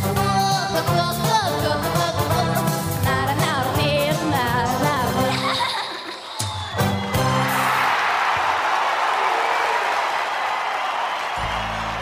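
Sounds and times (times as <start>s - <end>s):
backing music: 0.0s - 5.5s, 6.4s - 8.0s, 11.4s - 12.0s
audience applauding and cheering: 6.4s - 12.0s.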